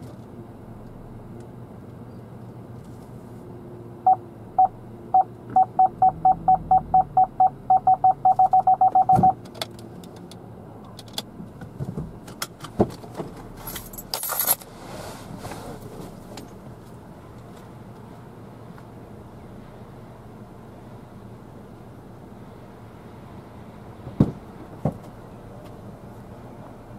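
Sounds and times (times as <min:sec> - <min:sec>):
parking sensor beeping: 0:04.1 - 0:09.4.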